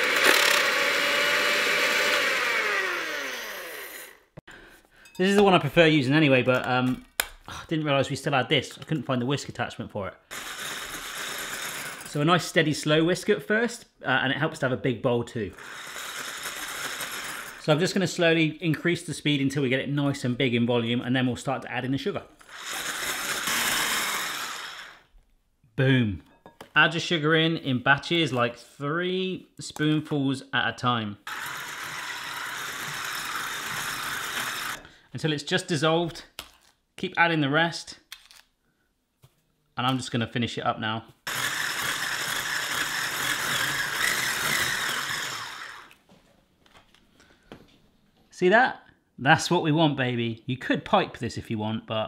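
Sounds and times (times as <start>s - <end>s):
hand blender whisking egg whites: 0.0s - 4.2s, 10.3s - 12.6s, 15.5s - 18.0s, 22.4s - 25.0s, 31.3s - 34.8s, 41.3s - 46.0s.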